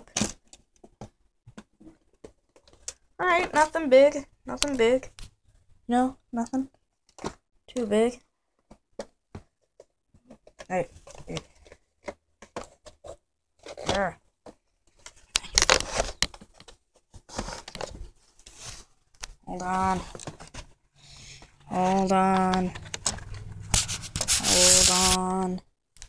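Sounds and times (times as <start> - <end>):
person speaking: 21.7 - 23.1, 23.8 - 25.5.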